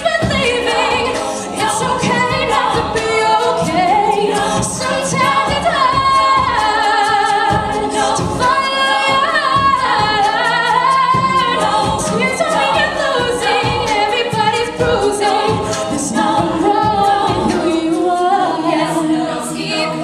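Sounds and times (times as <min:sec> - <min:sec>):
backing voices harmonizing: 0:00.0 - 0:20.0
female soloist singing: 0:00.0 - 0:20.0
vocal percussion beat: 0:00.0 - 0:20.0.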